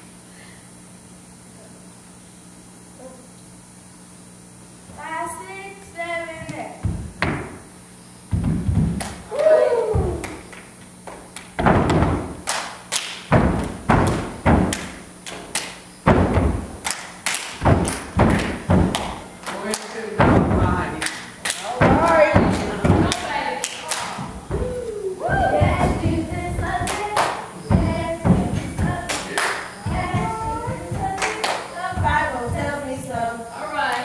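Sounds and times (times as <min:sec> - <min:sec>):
feet stamping on stage floor: 0:06.4 - 0:07.7, 0:08.3 - 0:09.3, 0:09.9 - 0:10.4, 0:11.0 - 0:12.4, 0:13.3 - 0:16.8, 0:17.5 - 0:19.3, 0:20.2 - 0:21.0, 0:21.7 - 0:23.4, 0:24.0 - 0:33.2
children calling out: 0:09.3 - 0:10.2, 0:24.5 - 0:25.9.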